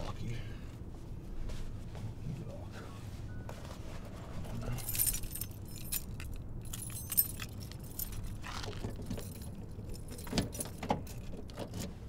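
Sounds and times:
keys jangling: 4.7s - 11.9s.

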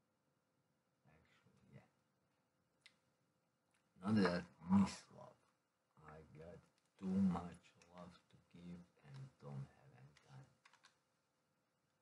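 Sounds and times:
faint clicks: 9.0s - 9.5s, 10.1s - 11.0s.

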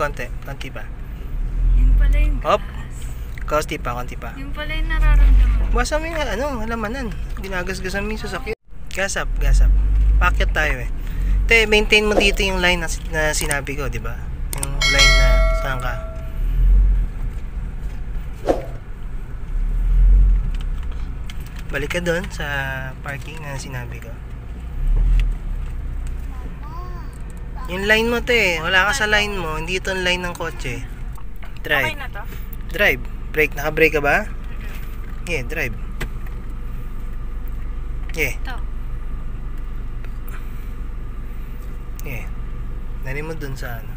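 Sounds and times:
car engine and road noise: 0.0s - 43.9s.

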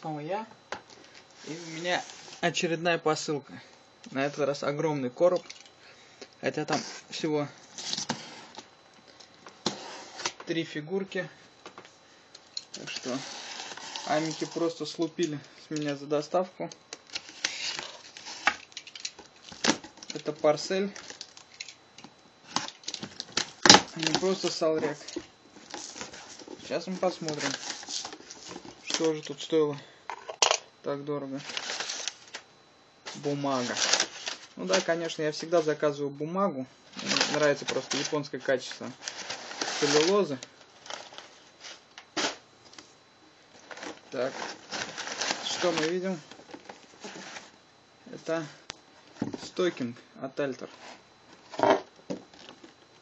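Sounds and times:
packing paper rustling: 12.8s - 14.9s, 22.4s - 29.4s, 31.3s - 32.5s, 33.1s - 35.7s, 36.9s - 42.8s, 43.6s - 47.6s.

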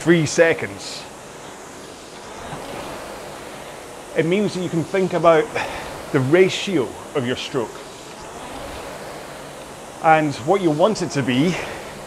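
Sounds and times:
rowing machine flywheel whooshing: 0.0s - 12.0s.

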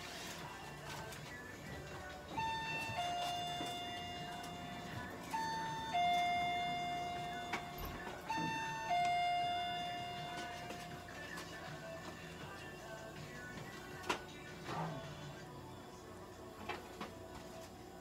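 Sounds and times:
electronic two-tone chime: 2.4s - 10.9s.

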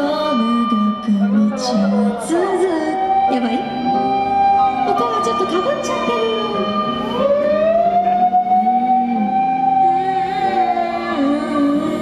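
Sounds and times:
woman singing into microphone: 0.0s - 4.0s, 4.8s - 6.8s, 8.5s - 12.0s
backing music: 0.0s - 12.0s.

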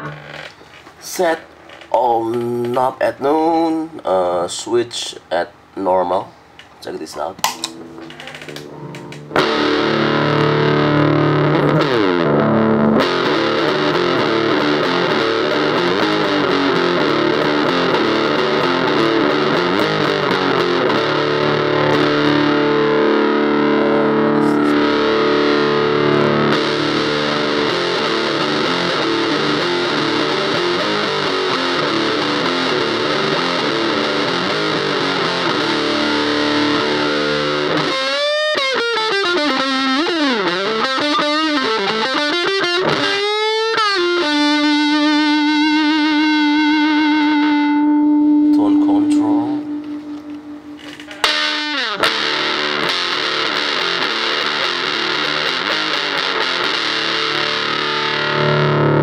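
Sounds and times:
heavily fuzzed electric guitar: 0.0s - 5.7s, 7.4s - 59.0s.

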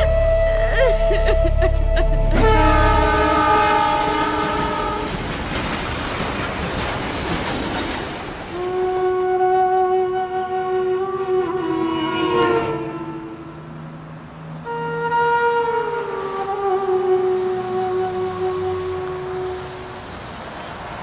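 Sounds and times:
low drone: 0.0s - 4.5s
flute-like wind instrument: 0.0s - 5.3s, 8.5s - 13.8s, 14.6s - 20.4s.

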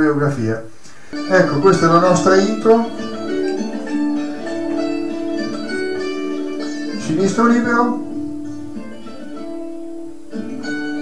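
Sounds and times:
folk tune on psaltery: 0.9s - 11.0s.

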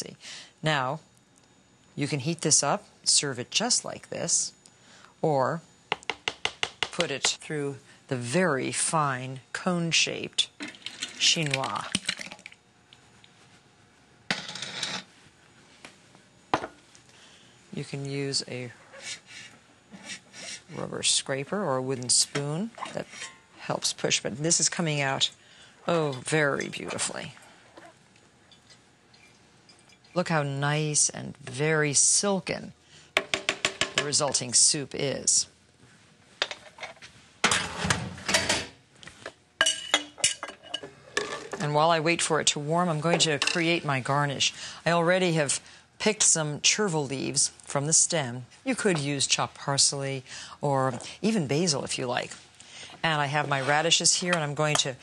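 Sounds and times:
utensil knock: 33.2s - 34.1s
metal cookware clattering: 39.6s - 41.6s.

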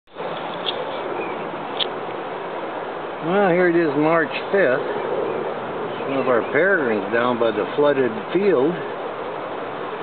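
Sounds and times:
outdoor background hiss: 0.1s - 10.0s.

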